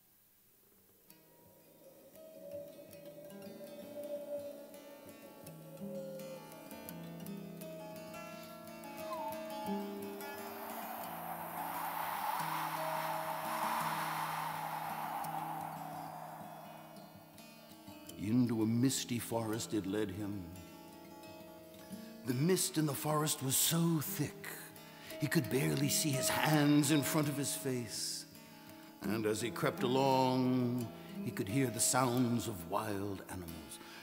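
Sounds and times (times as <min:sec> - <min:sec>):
breathy whooshing hiss: 0:01.6 - 0:06.9, 0:09.1 - 0:17.8.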